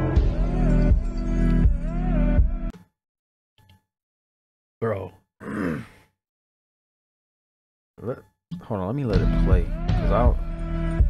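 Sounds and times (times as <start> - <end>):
man groaning: 5.4 - 6.0.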